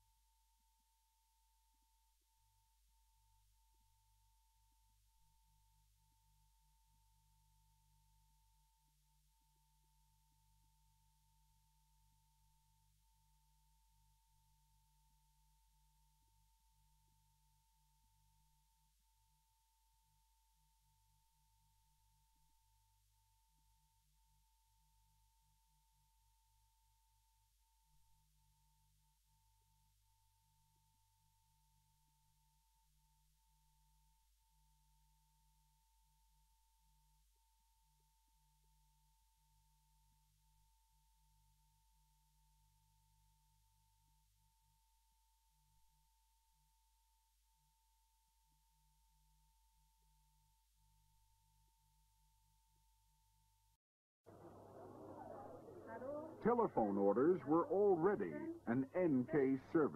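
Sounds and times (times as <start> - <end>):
faint high tone: 54.4 - 59.9.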